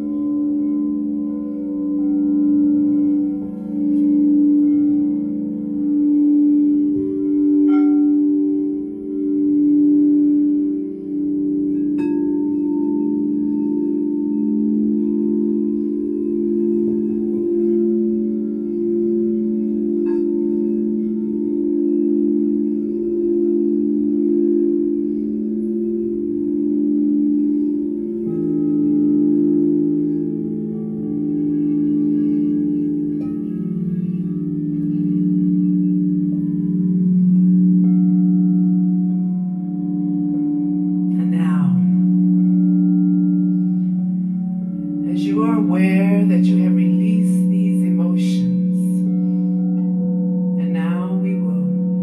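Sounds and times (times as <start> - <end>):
crystal singing bowls droning: 0.0 - 52.0.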